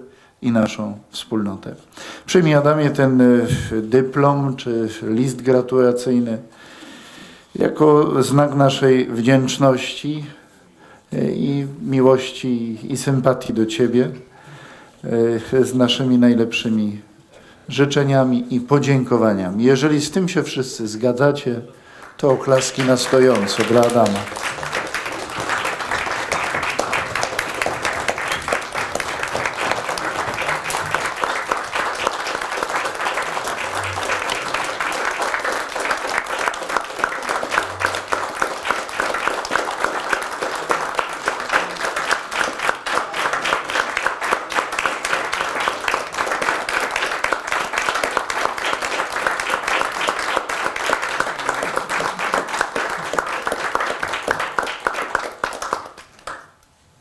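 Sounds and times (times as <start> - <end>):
audience applauding: 22.0 - 56.5.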